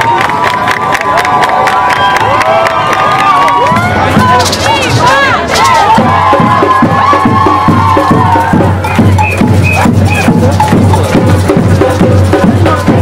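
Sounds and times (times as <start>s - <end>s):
crowd cheering and shouting: 0.0s - 11.6s
street percussion beat: 0.0s - 13.0s.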